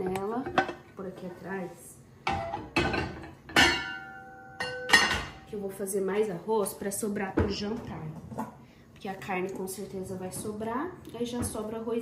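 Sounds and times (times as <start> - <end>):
metal cookware clanking: 2.2 - 5.6.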